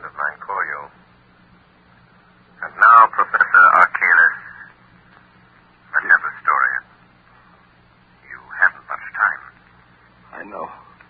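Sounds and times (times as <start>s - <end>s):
faint low hum: 0.0s - 11.0s
radio-like voice speaking: 2.6s - 4.7s, 5.9s - 6.9s, 8.3s - 9.6s.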